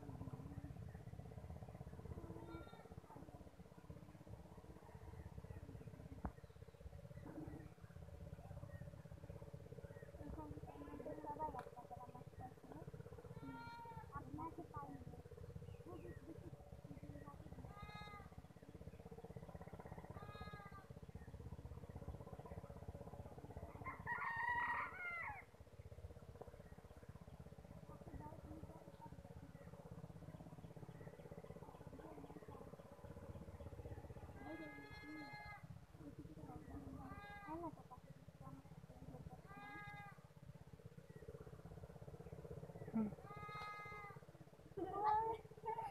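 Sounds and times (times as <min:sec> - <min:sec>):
steady low hum: 0:00.0 - 0:45.9.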